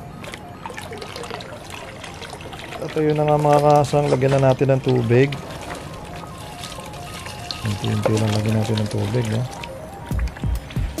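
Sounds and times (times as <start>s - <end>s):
melodic background music: 0.0s - 11.0s
hose water pouring into tub: 0.2s - 10.4s.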